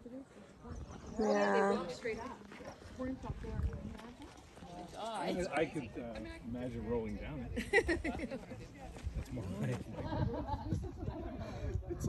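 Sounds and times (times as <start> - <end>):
low microphone rumbles: 8.9 - 12.0.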